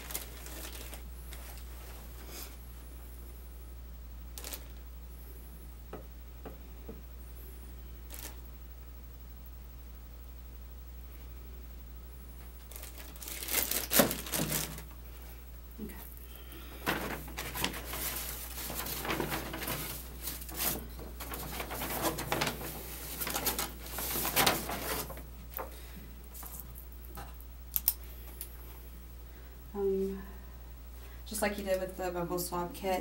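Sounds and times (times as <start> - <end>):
paper and packaging rustling: 0.0 - 2.1, 4.4 - 4.8, 8.1 - 8.4, 12.6 - 15.0, 16.8 - 25.7.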